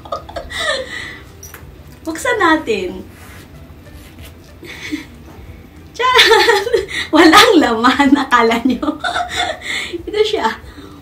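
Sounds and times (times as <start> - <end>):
wallet rubbing and rustling: 3.1 - 4.5.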